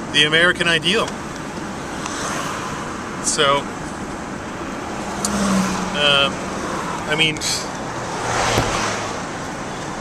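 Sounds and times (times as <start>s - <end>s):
rushing noise inside vehicle cab: 8.1s - 10.0s.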